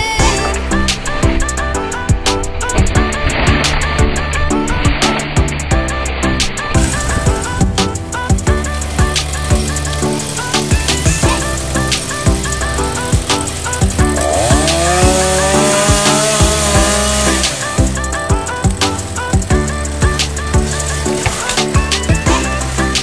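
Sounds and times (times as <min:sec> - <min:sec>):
background music with steady beat: 0:00.0 - 0:23.0
chainsaw engine revving: 0:08.9 - 0:18.2.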